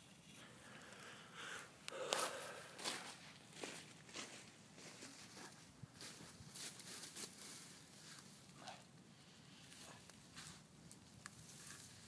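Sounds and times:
footsteps on dry leaves: 2.8 - 8.2.

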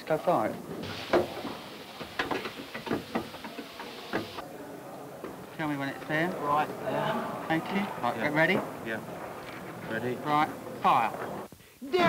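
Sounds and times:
steady hiss: 0.0 - 4.4.

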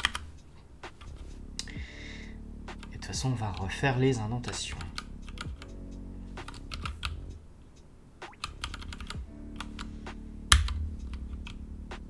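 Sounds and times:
computer keyboard typing: 0.0 - 0.3, 4.7 - 5.7, 6.4 - 7.2, 8.4 - 9.9, 10.5 - 11.6.

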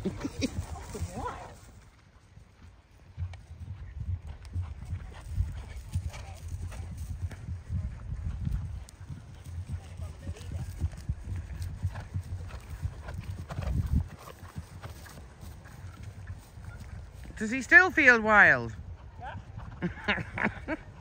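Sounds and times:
horses cantering on grass: 0.0 - 21.0.

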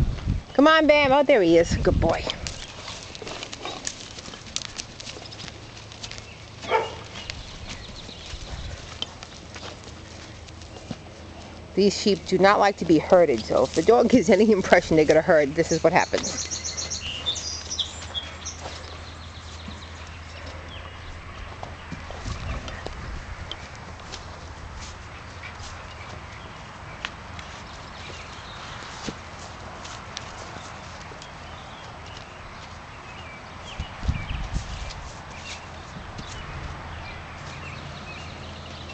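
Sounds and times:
hooves on packed dirt: 0.0 - 38.9.

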